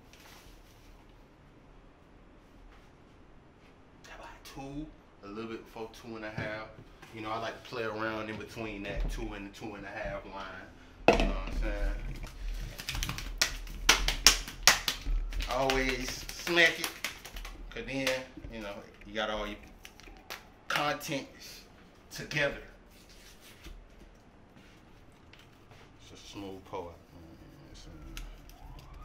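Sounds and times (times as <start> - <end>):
paper packet slapped: 12.7 - 18.4
emergency siren wailing: 17.5 - 21.8, 27.1 - 29.0.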